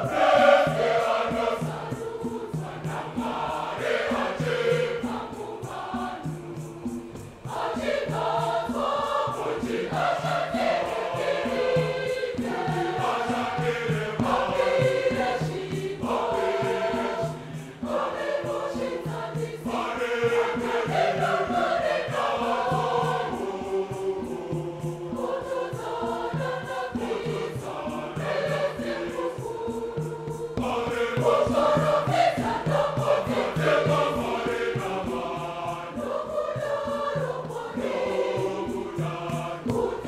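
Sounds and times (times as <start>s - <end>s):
mixed choir singing a hymn: 0.0s - 40.0s.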